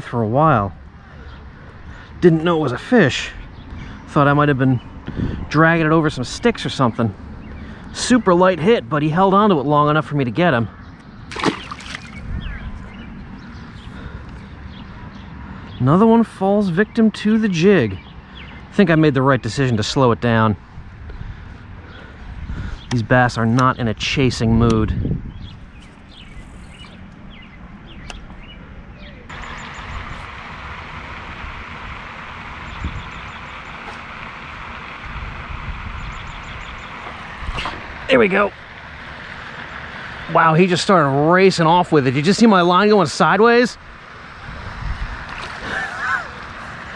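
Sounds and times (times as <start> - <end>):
low steady rumble: 0.0 - 46.9
bird chirps: 10.6 - 19.6, 25.2 - 30.2, 32.6 - 34.0, 35.8 - 37.2
fish splashing into water: 11.3 - 12.2.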